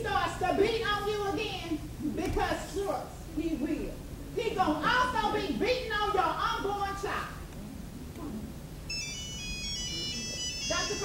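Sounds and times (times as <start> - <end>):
phone ringtone melody: 8.9 - 11.0.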